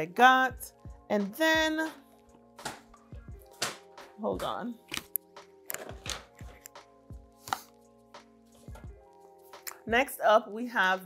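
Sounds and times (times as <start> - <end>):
soft background music: 0.0 - 11.0
knocks and taps of packaging: 3.6 - 3.9.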